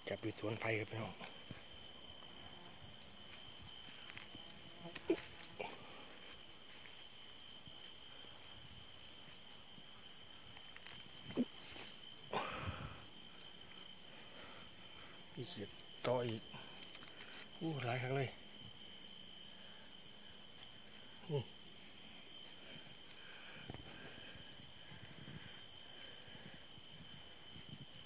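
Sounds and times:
cricket trill: 0:00.0 - 0:28.0.

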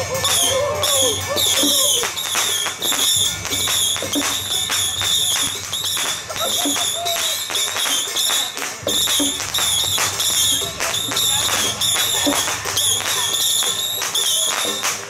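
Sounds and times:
percussion beating evenly: 0:00.0 - 0:15.0
voices: 0:00.0 - 0:15.0.

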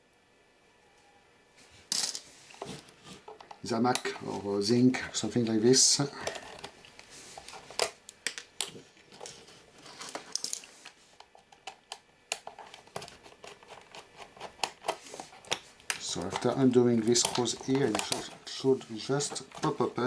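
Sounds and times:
plastic casing handled: 0:11.5 - 0:20.0.

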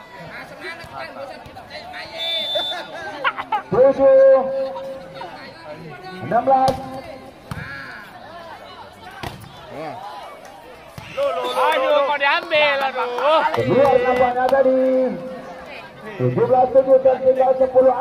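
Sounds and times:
people shouting: 0:11.0 - 0:14.3.

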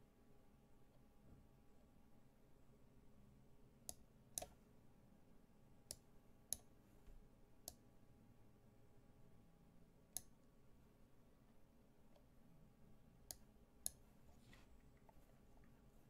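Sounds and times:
computer mouse clicks: 0:03.9 - 0:04.6, 0:13.3 - 0:15.7.

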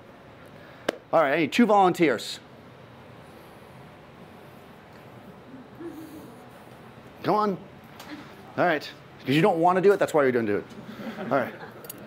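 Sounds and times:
person humming: 0:05.5 - 0:06.5.

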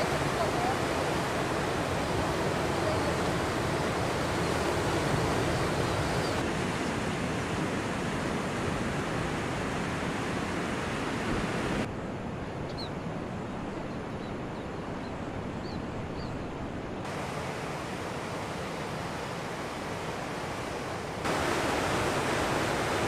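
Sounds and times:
ocean surf breaking: 0:00.0 - 0:11.9, 0:17.0 - 0:23.0.

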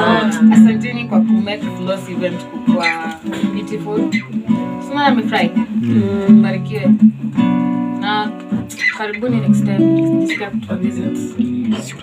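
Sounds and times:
people talking: 0:00.0 - 0:07.0, 0:08.0 - 0:12.0
acoustic guitar strummed softly: 0:00.0 - 0:12.0.

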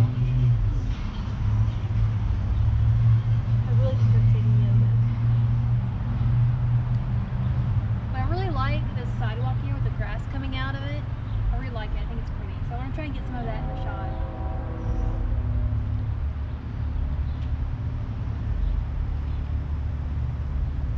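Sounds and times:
motor vehicle rumble: 0:00.0 - 0:20.9.

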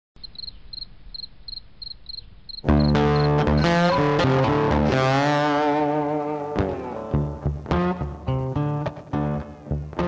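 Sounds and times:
cricket chirping: 0:00.2 - 0:03.7
guitar music: 0:02.6 - 0:10.0.

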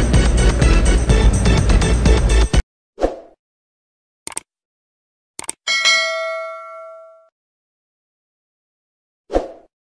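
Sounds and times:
notification bell chime: 0:05.7 - 0:07.3.

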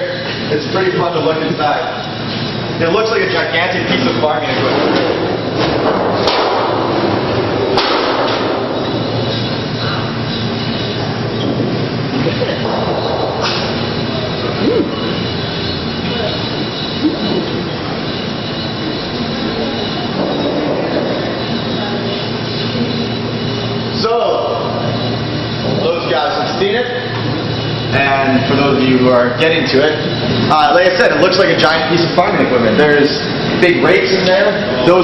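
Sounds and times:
machinery running with hum: 0:00.0 - 0:35.0
sharp knocks: 0:05.0 - 0:10.1, 0:12.5 - 0:15.2.

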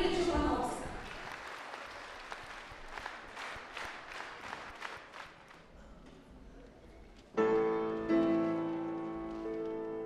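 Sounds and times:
audience applauding: 0:00.9 - 0:05.8.

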